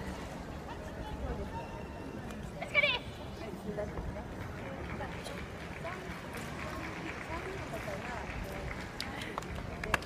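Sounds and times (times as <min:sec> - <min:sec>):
murmur of distant voices: 0:00.0 - 0:10.0.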